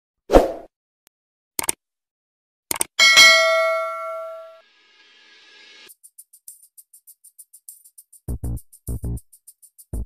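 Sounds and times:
notification bell dinging: 3.0 - 4.6.

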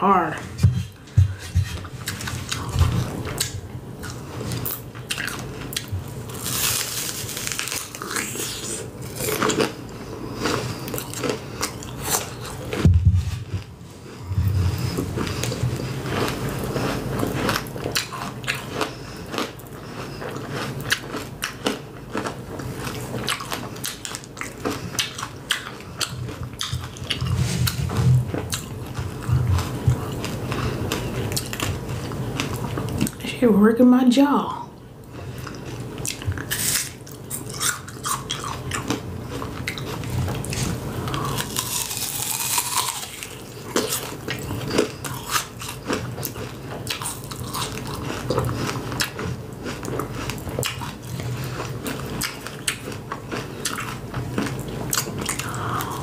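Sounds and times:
chewing and crunching candy apple: 1.8 - 33.3, 35.0 - 56.0.

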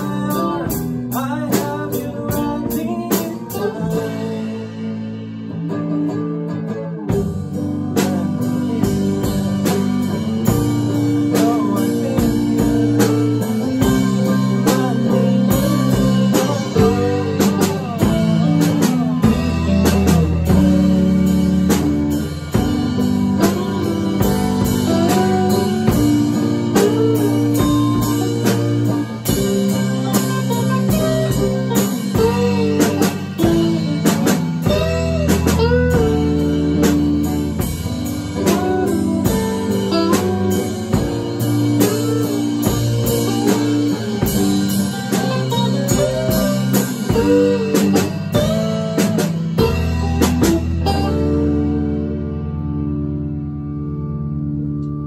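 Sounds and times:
lead electric guitar bending notes: 0.0 - 55.0
rock band playing: 0.0 - 55.0.

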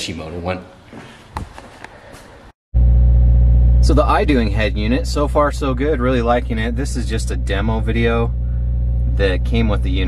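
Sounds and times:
car engine idling: 2.8 - 10.0.

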